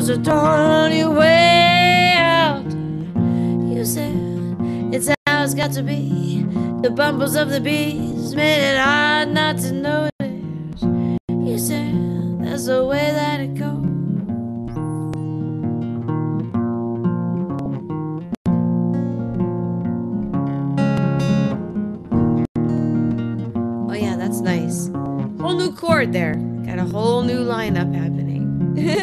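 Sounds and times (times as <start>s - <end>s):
guitar strumming chords: 0.0s - 29.0s
person singing: 28.8s - 29.0s.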